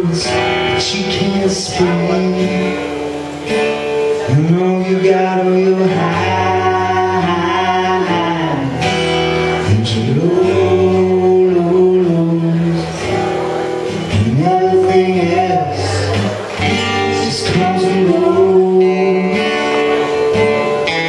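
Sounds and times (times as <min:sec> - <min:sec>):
person singing: 0:00.0 - 0:21.0
strummed acoustic guitar: 0:00.0 - 0:21.0.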